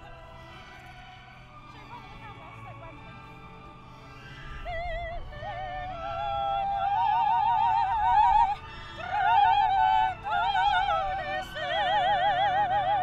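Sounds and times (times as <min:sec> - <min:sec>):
women singing opera: 0:00.0 - 0:03.2, 0:04.4 - 0:13.0.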